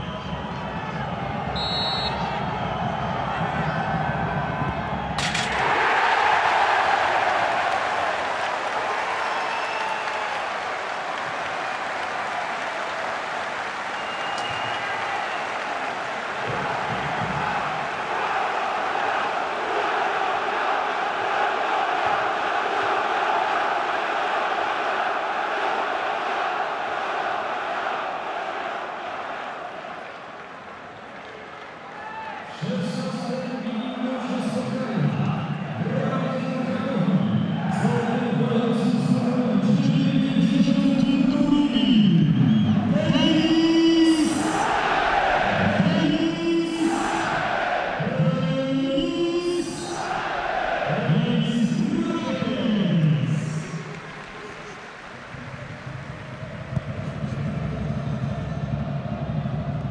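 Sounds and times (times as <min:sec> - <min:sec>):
stadium crowd cheering: 0:00.0 - 0:59.9.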